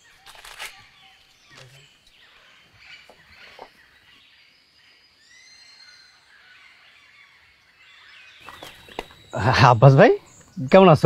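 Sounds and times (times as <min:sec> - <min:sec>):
faint outdoor ambience: 0:00.0 - 0:11.0.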